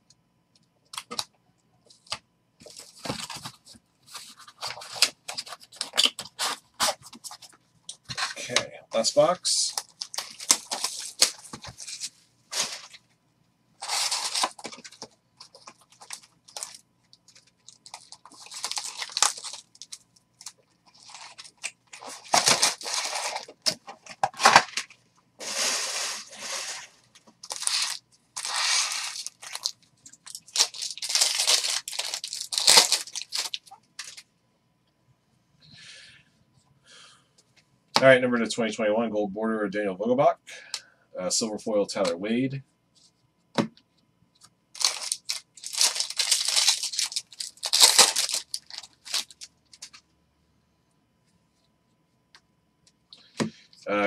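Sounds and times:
foil wrappers crinkling and tearing: 0:09.2 - 0:13.0, 0:13.8 - 0:34.2, 0:44.8 - 0:50.0.

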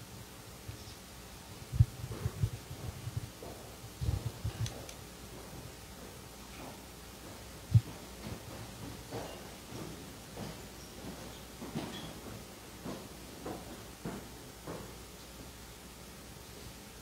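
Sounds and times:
faint marching footsteps: 0:01.6 - 0:16.1.

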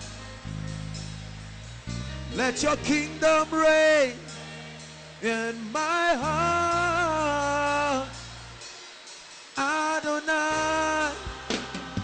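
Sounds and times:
low sustained chord: 0:00.0 - 0:12.0
worship singing long note: 0:02.2 - 0:08.9, 0:09.5 - 0:12.0.

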